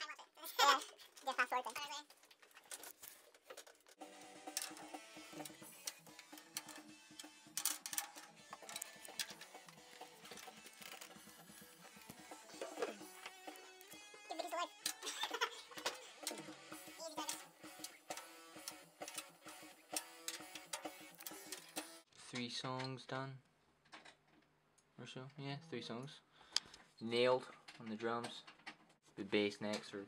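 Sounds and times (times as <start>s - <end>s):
faint background music: 4.0s - 23.4s, 25.0s - 26.3s.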